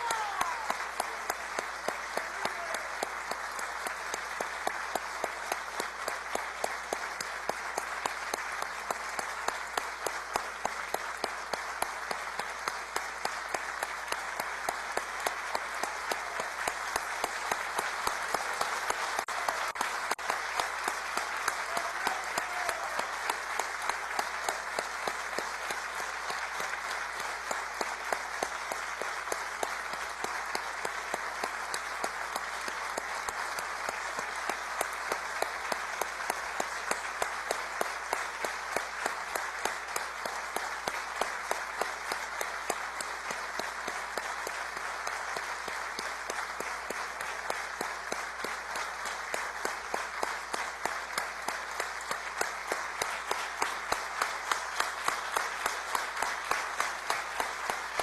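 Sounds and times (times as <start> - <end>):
crowd applauding rhythmically: 0.0 - 58.0.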